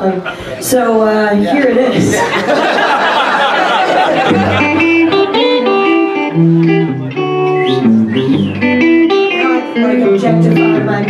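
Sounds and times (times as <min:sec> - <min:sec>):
electric guitar playing: 0:03.8 - 0:11.0.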